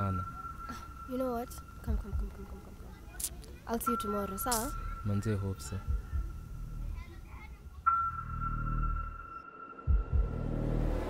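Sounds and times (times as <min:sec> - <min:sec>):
low rumble: 0:00.0 - 0:03.0, 0:07.9 - 0:11.0
high steady tone: 0:00.0 - 0:11.0
low thuds: 0:05.8 - 0:06.9, 0:09.9 - 0:10.5.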